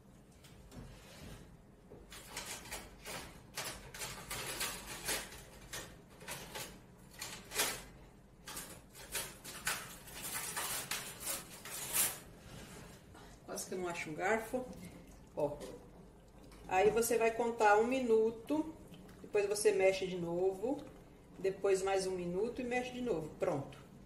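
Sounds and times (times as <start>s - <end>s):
pot of water boiling: 4.7s - 24.0s.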